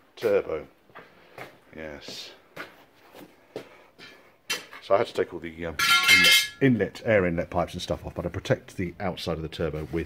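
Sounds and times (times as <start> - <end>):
man speaking: 0.2 - 0.8, 1.7 - 2.4, 4.8 - 10.0.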